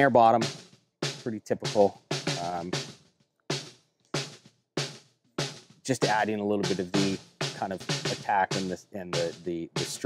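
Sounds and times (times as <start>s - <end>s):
snare drum hits: 5.4s - 10.0s.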